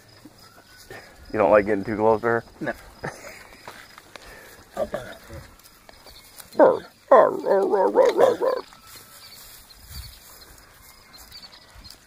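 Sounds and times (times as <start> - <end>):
lioness wavering call: 6.6 - 8.7.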